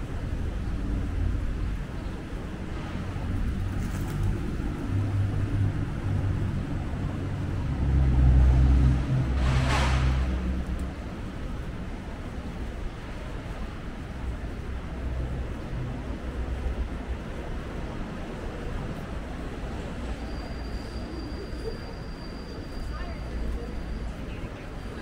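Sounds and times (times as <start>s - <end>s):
vehicle engine rumble: 0.0s - 25.0s.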